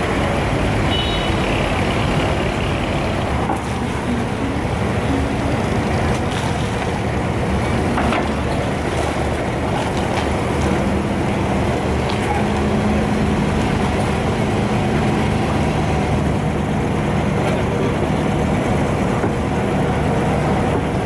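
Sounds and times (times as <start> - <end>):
boat diesel engine running: 0.0 - 21.0.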